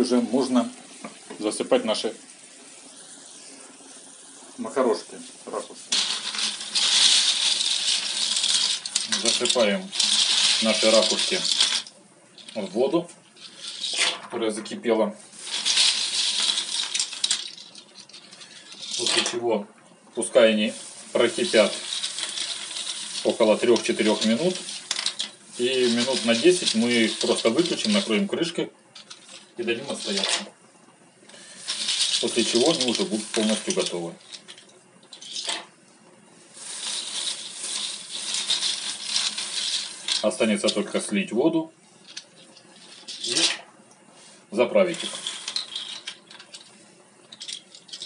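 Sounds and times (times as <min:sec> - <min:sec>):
dry pasta rustling and rattling: 0:05.4 - 0:19.4, 0:20.3 - 0:28.3, 0:29.0 - 0:30.5, 0:31.4 - 0:35.6, 0:36.5 - 0:41.2, 0:42.0 - 0:43.6, 0:44.6 - 0:48.0.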